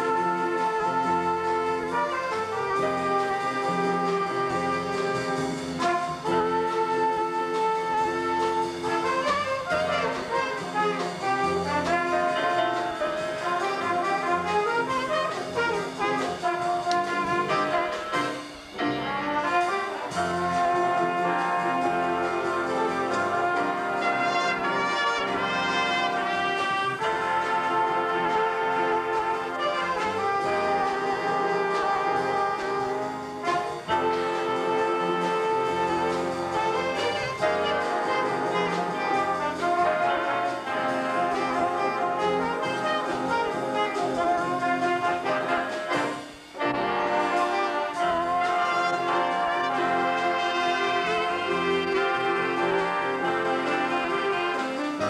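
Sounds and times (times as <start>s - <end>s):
jazz big band playing: 0.0s - 55.0s.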